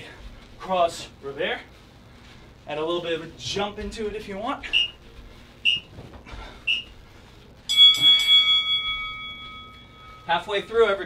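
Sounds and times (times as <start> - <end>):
timer bell ringing: 7.7 - 11.0.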